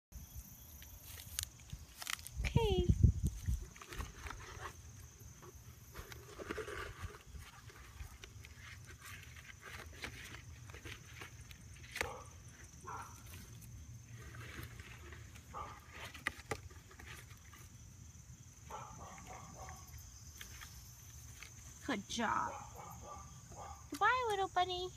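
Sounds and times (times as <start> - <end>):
night insects trilling: 0.2 - 24.9
rustling in dry grass: 1.0 - 2.4, 3.0 - 17.8.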